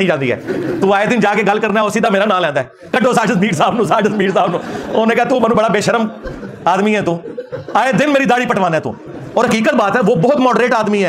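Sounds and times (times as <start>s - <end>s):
man speaking emphatically: 0.0s - 11.0s.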